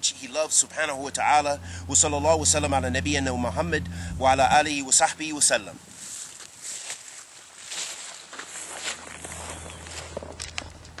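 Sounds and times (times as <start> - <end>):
low steady hum: 0.1 - 6.0.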